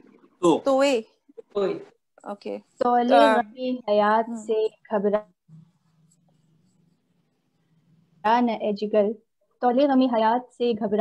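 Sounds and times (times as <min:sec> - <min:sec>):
woman speaking: 0:02.2 - 0:05.3, 0:08.3 - 0:11.0.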